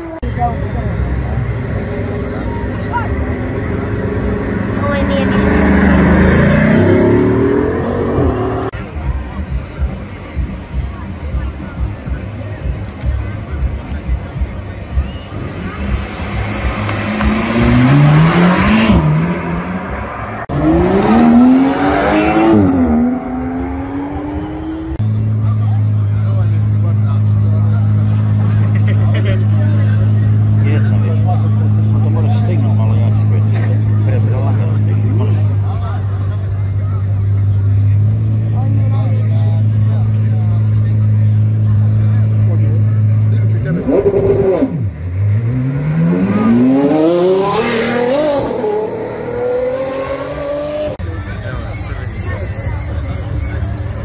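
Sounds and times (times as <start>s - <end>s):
car revving: 0.0s - 54.0s
car accelerating hard: 0.2s - 8.8s, 15.4s - 54.0s
low engine drone: 0.2s - 47.6s.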